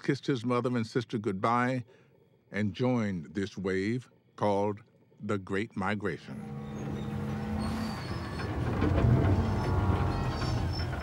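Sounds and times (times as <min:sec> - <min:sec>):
paddlewheel machinery rumble: 0:06.3 - 0:11.0
steady machinery hum: 0:06.3 - 0:11.0.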